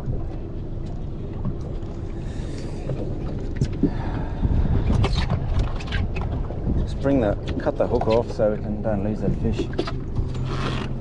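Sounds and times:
steady low rumble: 0:00.0 - 0:11.0
wind buffeting microphone: 0:02.9 - 0:10.3.

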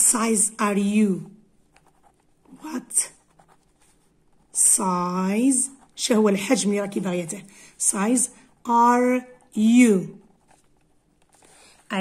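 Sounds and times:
person speaking: 0:00.0 - 0:12.0
pen scratching on paper: 0:00.6 - 0:07.3, 0:07.9 - 0:12.0.

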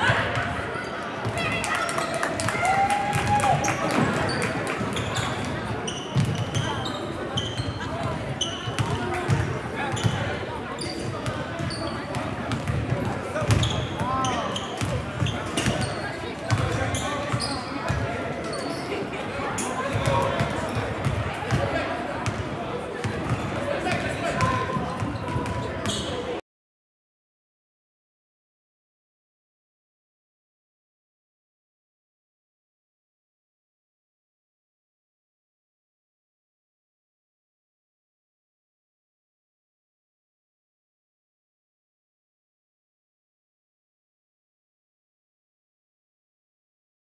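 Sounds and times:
people chattering: 0:00.0 - 0:26.4
shoe squeaks: 0:04.3 - 0:08.8, 0:13.6 - 0:16.2, 0:16.9 - 0:17.7, 0:25.5 - 0:26.3.

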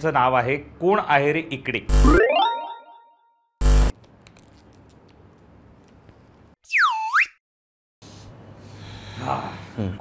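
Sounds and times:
descending whistle sound effect: 0:06.7 - 0:07.4.

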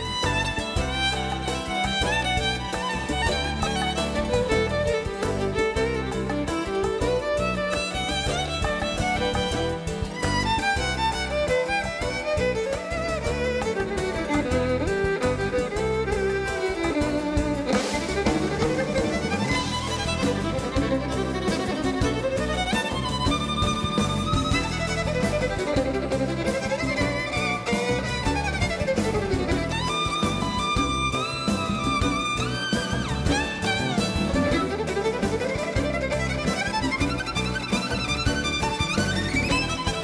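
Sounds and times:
drums and bass: 0:00.0 - 0:40.0
violins playing fast melodies: 0:00.0 - 0:40.0.

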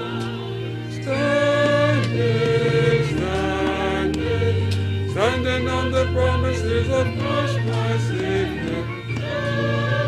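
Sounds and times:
group singing a hymn: 0:00.0 - 0:10.0
sustained low accompaniment: 0:00.0 - 0:10.0.

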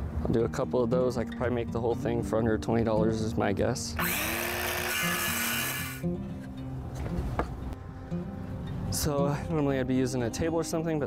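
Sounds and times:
background music: 0:00.0 - 0:11.0
circular saw cutting wood: 0:04.0 - 0:06.0.

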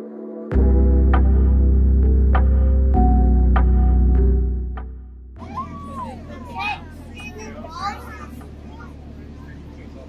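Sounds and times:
background music: 0:00.0 - 0:08.5
young children chattering: 0:05.4 - 0:10.0.

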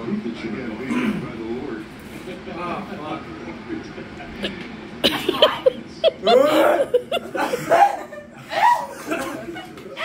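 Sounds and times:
people laughing: 0:04.3 - 0:10.0.

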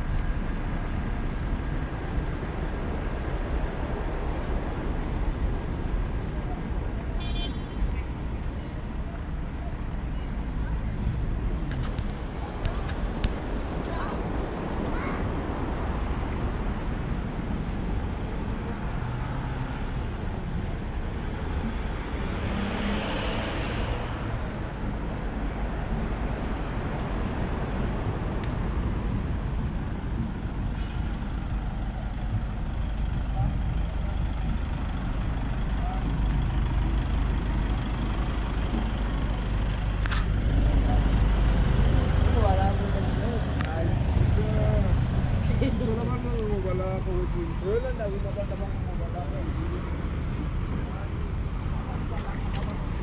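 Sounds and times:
road traffic rumble: 0:00.0 - 0:53.0.

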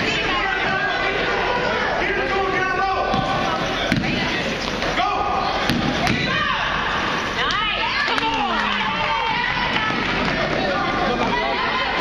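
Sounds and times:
voices echoing in gym: 0:00.0 - 0:12.0
basketball bouncing on gym floor: 0:05.7 - 0:06.3.

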